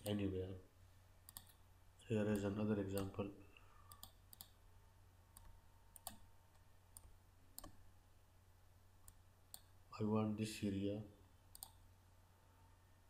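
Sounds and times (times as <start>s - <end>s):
faint computer mouse clicks: 3.9s - 4.6s, 11.5s - 11.8s.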